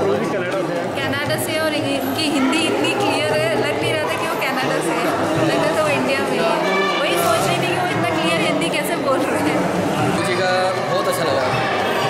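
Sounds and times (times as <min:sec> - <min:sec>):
people chattering: 0:00.0 - 0:12.0
woman talking: 0:01.0 - 0:09.6.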